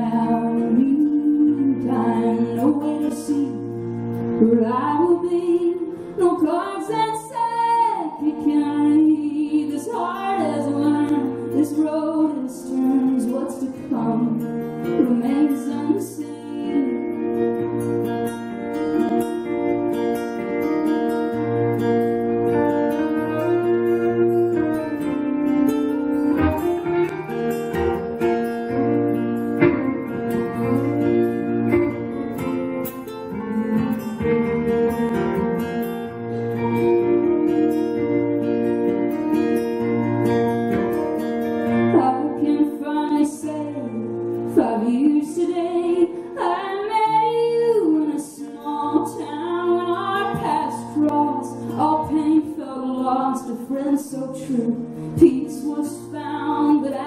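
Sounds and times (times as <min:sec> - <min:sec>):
woman singing: 0:00.0 - 0:17.7, 0:41.7 - 0:57.0
acoustic guitar strumming: 0:00.0 - 0:57.0
live band playing slow song: 0:00.0 - 0:57.0.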